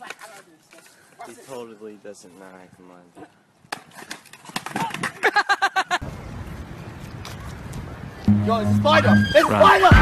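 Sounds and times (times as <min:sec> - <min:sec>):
people laughing: 0:05.2 - 0:06.0
people yelling: 0:08.8 - 0:10.0.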